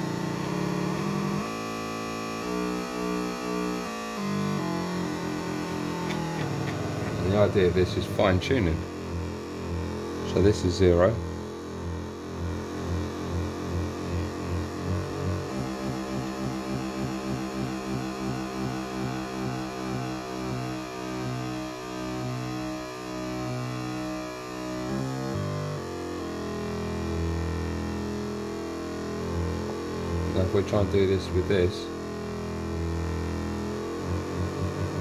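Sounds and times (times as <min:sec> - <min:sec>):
buzzy synthesizer note: 0:00.0 - 0:35.0.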